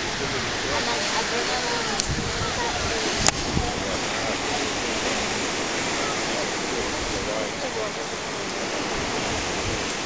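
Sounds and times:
ocean surf churning among rocks: 0.0s - 10.0s.

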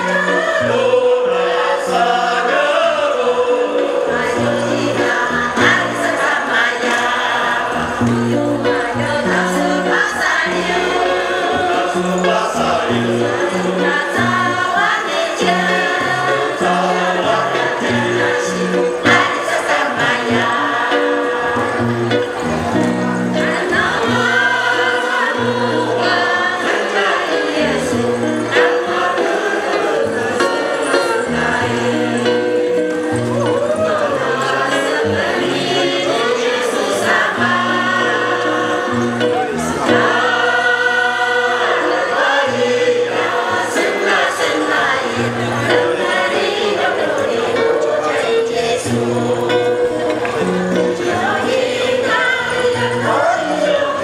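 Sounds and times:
women's choir singing long notes: 0.0s - 54.0s.

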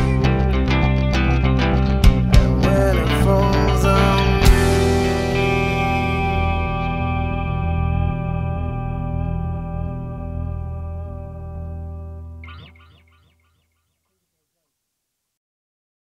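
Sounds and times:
low bass note: 0.0s - 12.8s
electric guitar chord ringing: 0.0s - 13.6s.

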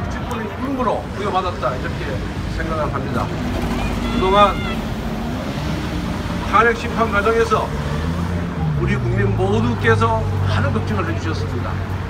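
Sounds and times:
low outdoor rumble: 0.0s - 10.2s
man speaking over loudspeakers: 6.5s - 8.2s, 8.8s - 11.9s.

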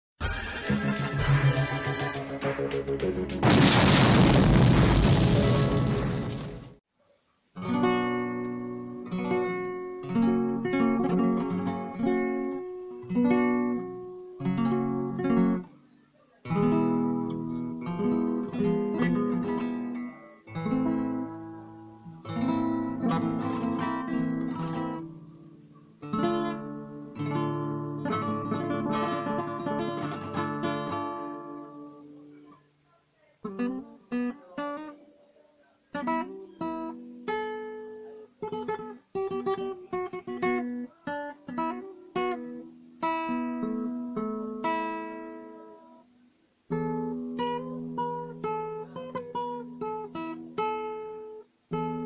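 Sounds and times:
explosion sound effect: 0.2s - 6.8s
flamenco classical guitar: 7.6s - 32.6s, 33.4s - 35.2s, 35.8s - 52.0s.

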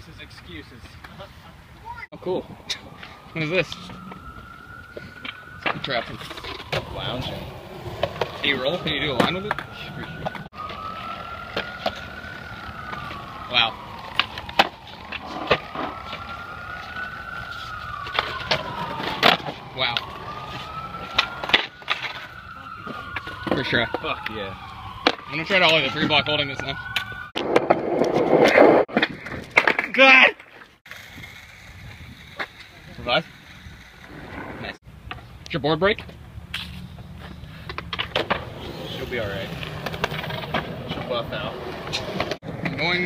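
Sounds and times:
distant siren wailing: 2.1s - 28.9s, 36.8s - 43.0s
skateboards clacking on concrete: 5.2s - 17.2s, 18.0s - 24.0s, 27.4s - 35.3s, 37.7s - 43.0s.

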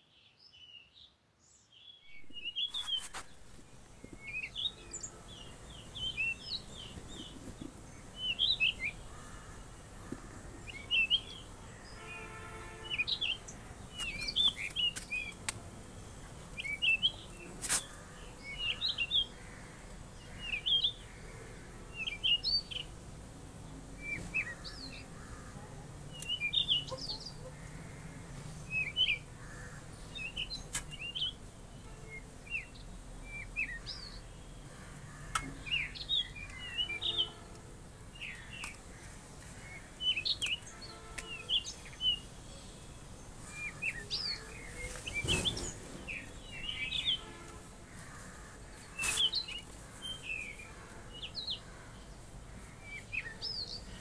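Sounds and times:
bird singing chirpy phrases: 0.0s - 3.2s, 4.0s - 9.1s, 10.7s - 15.4s, 16.0s - 17.5s, 26.1s - 27.5s, 35.4s - 38.8s, 40.0s - 47.5s.

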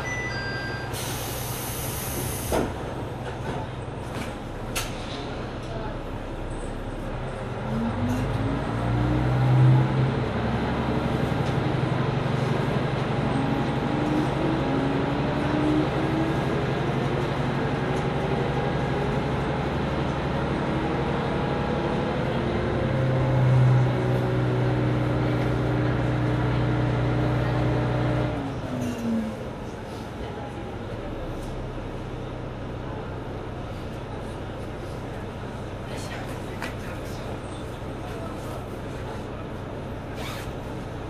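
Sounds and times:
diesel railcar engine revving: 0.0s - 41.0s.

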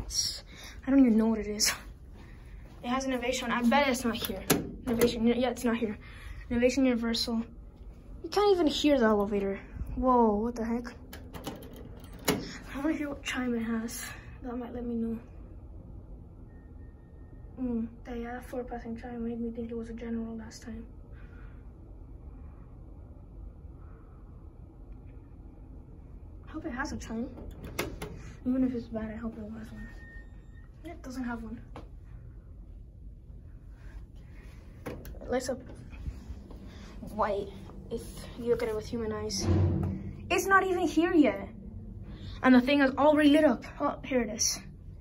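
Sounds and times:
low room rumble: 0.0s - 45.0s
sharp knock: 39.4s - 40.6s.

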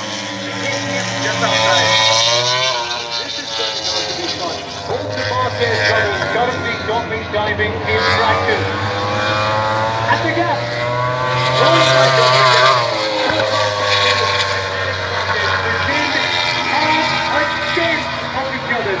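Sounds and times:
distant motorcycle engines: 0.0s - 19.0s
racing motorcycle passing: 0.0s - 19.0s.

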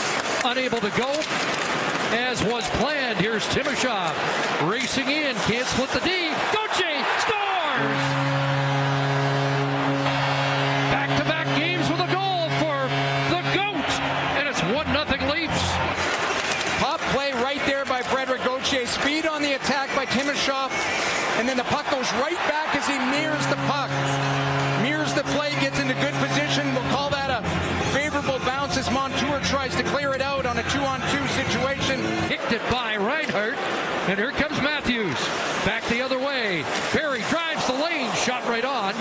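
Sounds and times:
crowd cheering: 0.0s - 39.0s
goal horn: 6.7s - 32.4s.

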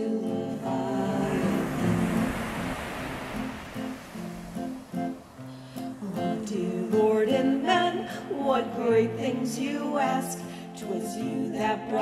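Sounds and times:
acoustic guitar plucking: 0.0s - 12.0s
rushing noise: 0.5s - 6.6s.

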